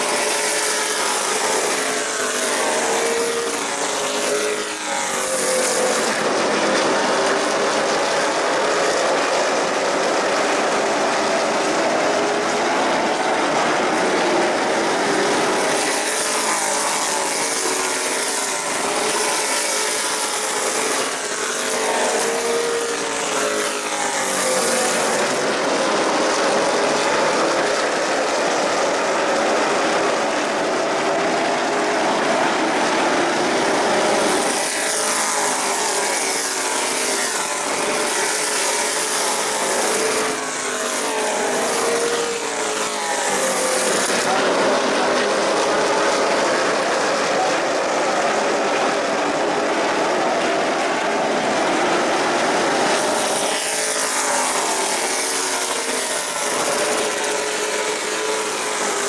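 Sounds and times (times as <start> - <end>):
racing car engines passing: 0.0 - 59.0.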